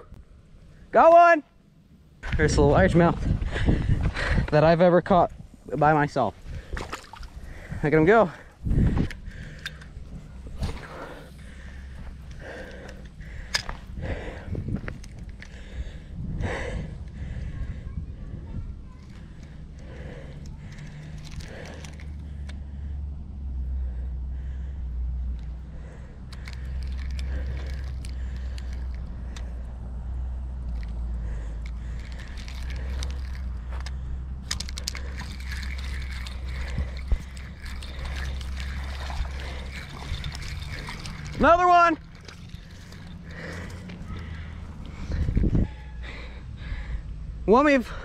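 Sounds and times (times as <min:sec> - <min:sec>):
low wind rumble on microphone: 0:01.7 - 0:48.0
fishing reel clicking: 0:19.0 - 0:22.6, 0:26.3 - 0:29.6, 0:30.7 - 0:45.5.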